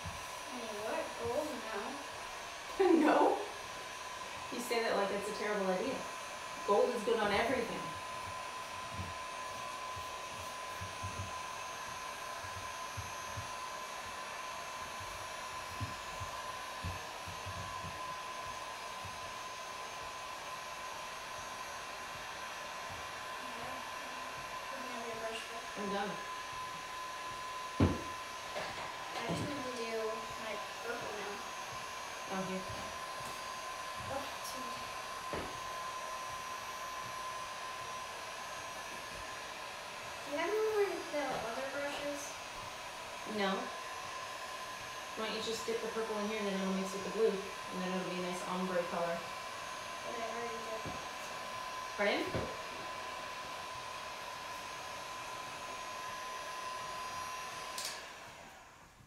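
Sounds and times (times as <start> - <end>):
heat gun blowing with whine: 0.0 - 59.0.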